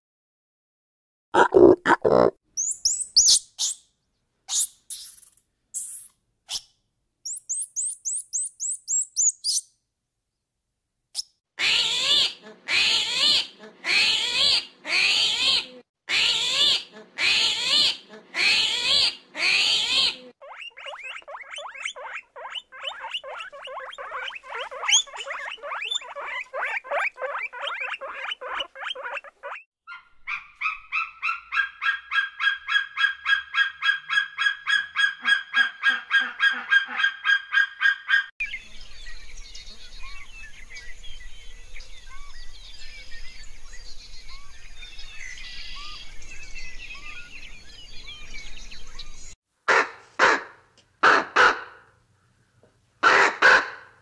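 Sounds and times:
harsh honk-like animal calls: 49.7s - 51.8s, 53.0s - 53.9s.

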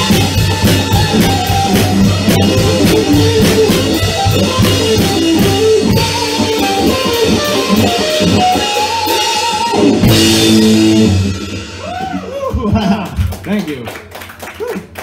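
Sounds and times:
electric guitar melody: 0.0s - 12.4s
drum kit beat: 0.0s - 13.8s.

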